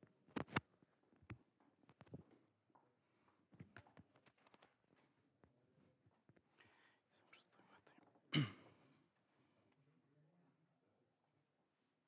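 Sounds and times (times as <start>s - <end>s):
faint whispering: 6.6s - 8.3s.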